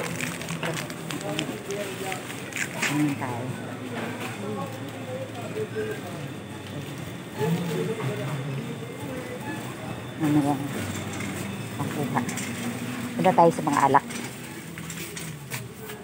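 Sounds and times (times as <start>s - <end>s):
indistinct talking: 0.0s - 16.0s.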